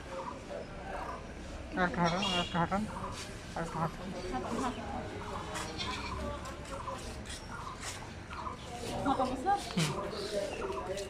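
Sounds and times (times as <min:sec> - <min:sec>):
fowl calling: 0:01.8 - 0:04.7.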